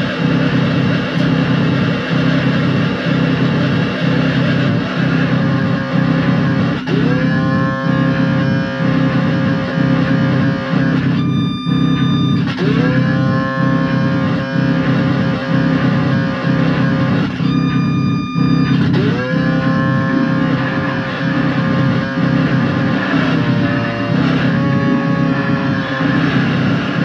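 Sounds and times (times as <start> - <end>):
distorted buzzing noise music: 0.0 - 27.0.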